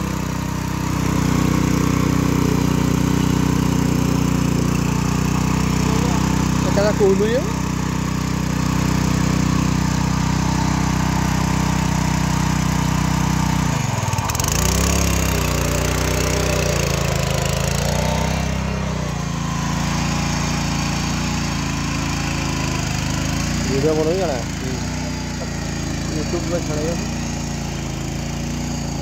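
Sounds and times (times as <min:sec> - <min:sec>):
power weeder engine running: 0:00.0 - 0:29.0.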